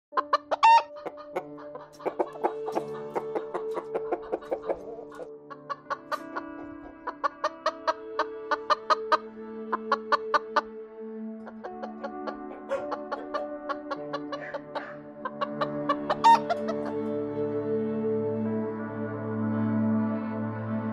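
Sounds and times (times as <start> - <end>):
chickens clucking: 0.1 - 17.4
light background music: 0.1 - 20.9.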